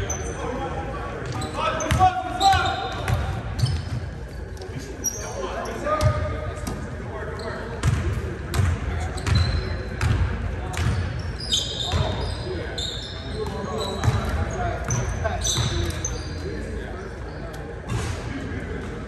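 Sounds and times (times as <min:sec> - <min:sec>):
sneaker squeaks: 0:00.0 - 0:00.6, 0:01.2 - 0:18.3
players' voices: 0:00.0 - 0:19.0.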